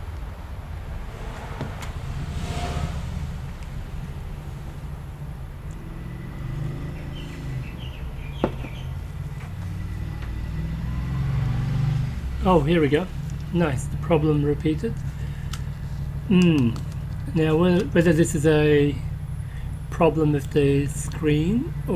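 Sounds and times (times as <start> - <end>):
low background rumble: 0.0 - 9.8.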